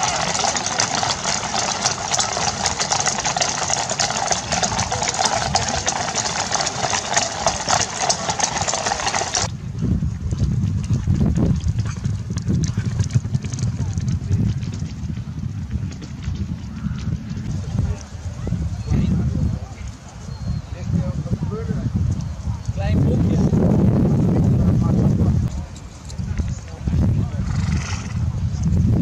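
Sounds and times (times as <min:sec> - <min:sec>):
horse hooves on brick road: 0:00.0 - 0:20.7, 0:21.9 - 0:29.0
wind rumbling on microphone: 0:00.0 - 0:29.0.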